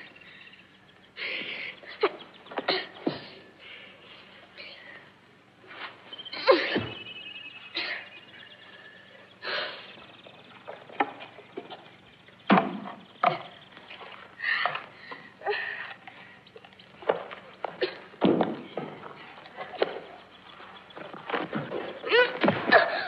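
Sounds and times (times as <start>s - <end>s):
sharp knocks and thumps: 12.5s - 13.6s, 18.2s - 19.1s.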